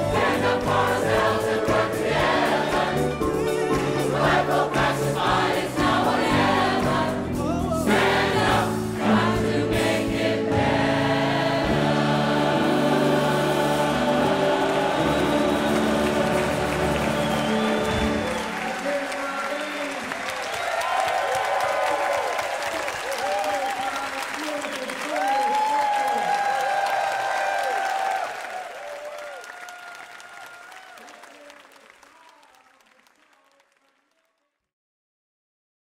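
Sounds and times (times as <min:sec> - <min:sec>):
choir holding a chord: 0:00.0 - 0:18.6
applause: 0:14.6 - 0:34.7
whooping cheers: 0:17.0 - 0:24.2, 0:24.8 - 0:32.8.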